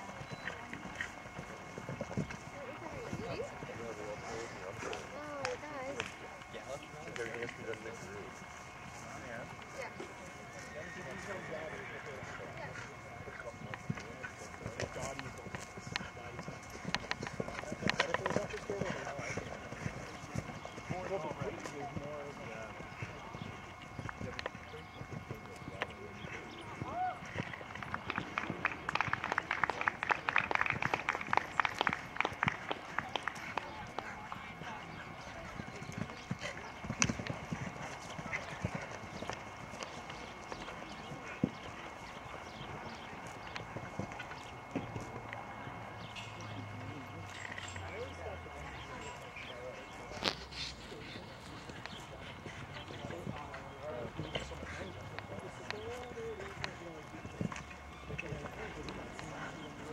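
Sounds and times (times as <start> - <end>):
horse hoofbeats on grass: 0.0 - 59.9.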